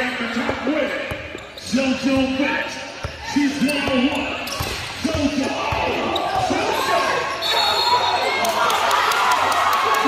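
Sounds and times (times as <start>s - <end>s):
voices in hall: 0.0s - 10.0s.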